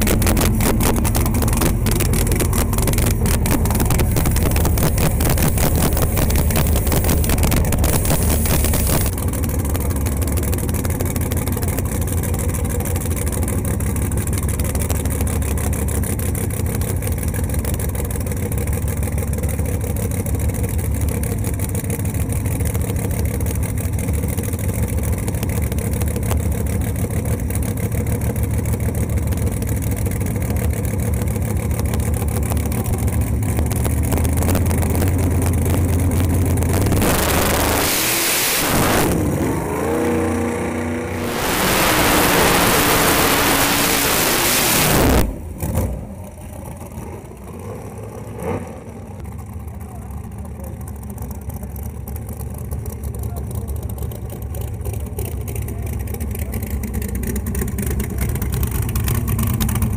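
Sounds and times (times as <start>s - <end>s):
drag car engine idling: 0.0s - 59.9s.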